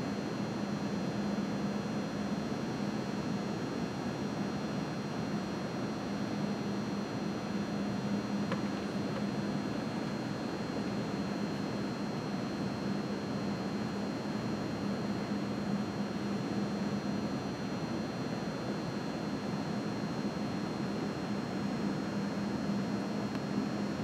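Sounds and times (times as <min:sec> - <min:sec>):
background hum and hiss: 0:00.0 - 0:24.0.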